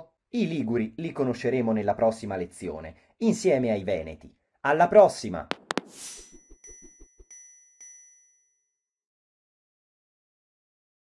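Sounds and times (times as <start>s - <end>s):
bell-like jingle chime: 6.0s - 8.8s.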